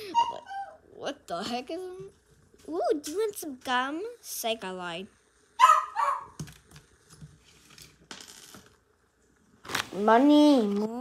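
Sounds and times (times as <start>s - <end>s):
small objects clicking and knocking: 6.4s - 8.8s.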